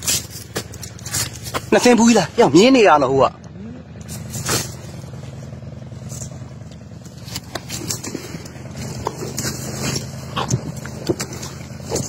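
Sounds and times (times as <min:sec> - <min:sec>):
low engine-like hum: 0:00.0 - 0:12.0.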